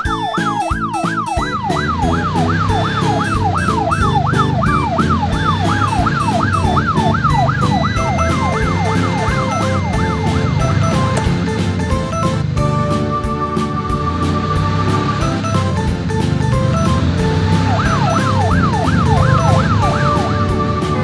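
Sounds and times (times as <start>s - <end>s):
police siren wailing: 0.0s - 21.0s
upbeat background music: 0.0s - 21.0s.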